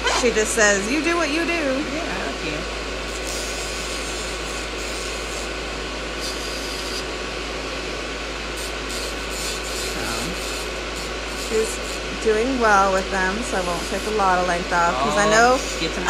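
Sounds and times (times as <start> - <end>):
motor humming: 0.0 - 16.0
fingernails being filed: 3.1 - 5.5, 6.2 - 7.1, 8.6 - 12.1.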